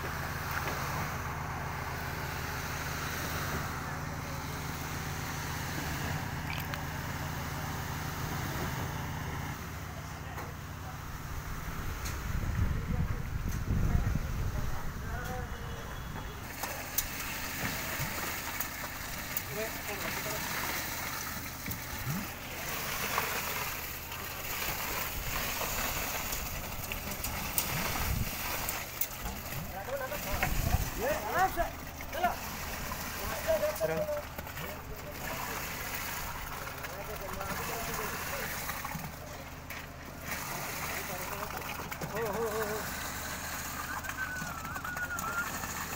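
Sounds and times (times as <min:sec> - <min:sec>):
engine rumbling: 0:00.0 - 0:45.9
wet concrete splattering: 0:06.5 - 0:06.9
steady low rumble: 0:10.9 - 0:16.4
bird whistling call: 0:43.8 - 0:45.6.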